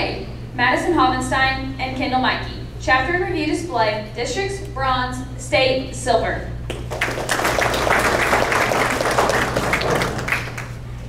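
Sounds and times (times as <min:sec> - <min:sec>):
audience applauding: 0:06.7 - 0:10.9.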